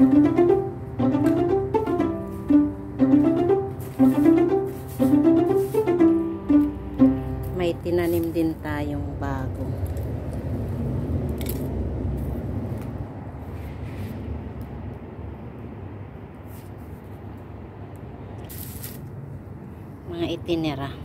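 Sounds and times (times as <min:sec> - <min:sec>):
low outdoor rumble: 0:00.0 - 0:16.4.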